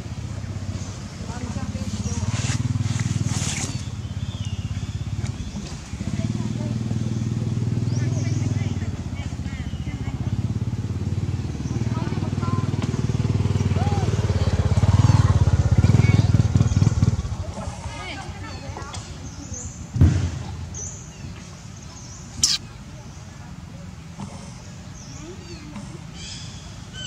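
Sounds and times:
motorcycle engine running: 0.0s - 19.9s.

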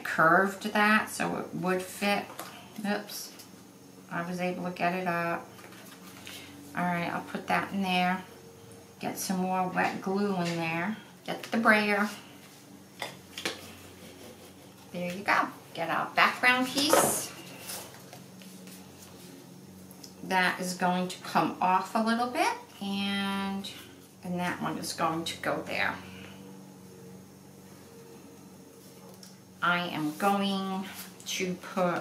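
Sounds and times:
faint room hum: 0.0s - 32.0s.

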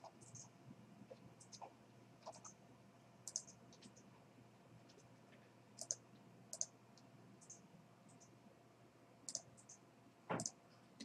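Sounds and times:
computer mouse clicking: 0.0s - 0.5s, 1.1s - 2.6s, 3.2s - 4.1s, 5.8s - 8.3s, 9.3s - 9.8s, 10.4s - 10.6s.

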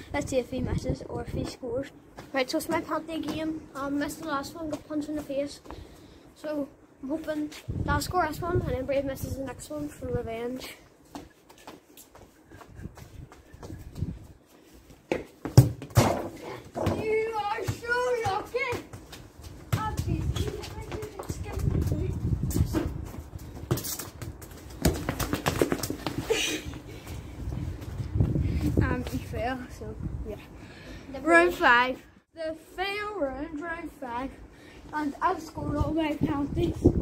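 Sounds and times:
wind rumble on microphone: 0.1s - 1.5s, 7.6s - 10.4s, 12.7s - 14.4s, 19.9s - 23.7s, 27.0s - 30.5s, 35.6s - 37.0s
children talking and calling out: 16.4s - 19.0s, 19.7s - 22.3s.

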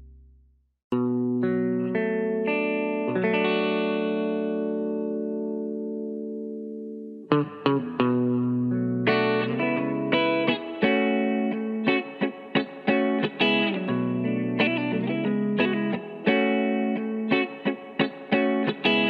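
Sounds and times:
soul guitar playing: 1.0s - 19.0s.

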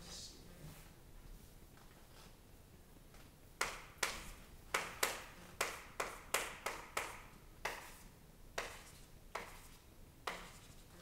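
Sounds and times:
chalk writing on chalkboard: 3.6s - 11.0s.

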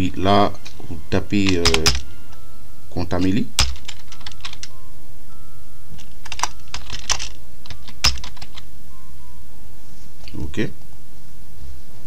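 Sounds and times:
steady low hum: 0.0s - 12.0s
computer keyboard typing: 1.4s - 2.0s, 3.6s - 4.7s, 6.2s - 8.6s.

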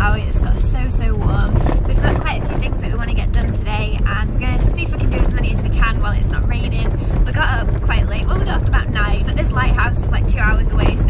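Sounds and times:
van road and engine rumble: 0.0s - 11.0s
woman talking: 0.0s - 11.0s.

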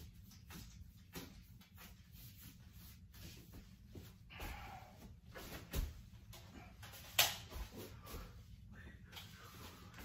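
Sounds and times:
paintbrush swishing on wall: 0.0s - 6.3s.

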